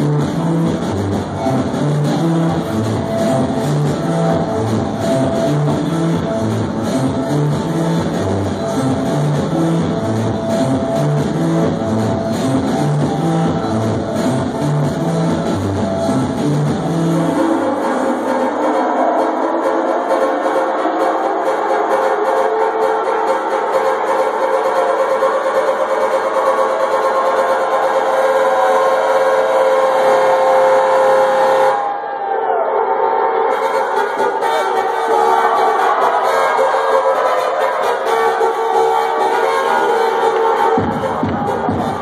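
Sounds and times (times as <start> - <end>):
electronic dance music synth chords: 0.0 - 42.0.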